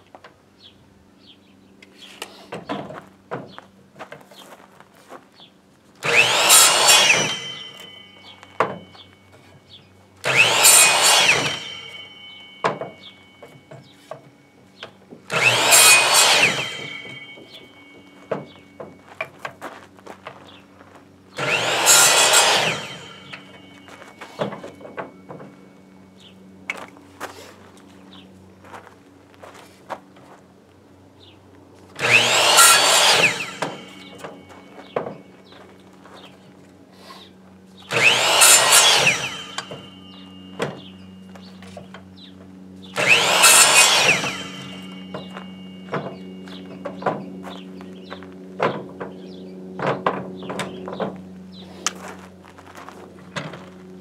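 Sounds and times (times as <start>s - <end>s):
miter saw cutting wood: 6.0s - 9.5s, 10.2s - 14.2s, 14.8s - 18.9s, 21.3s - 26.3s, 31.9s - 36.4s, 37.0s - 54.0s.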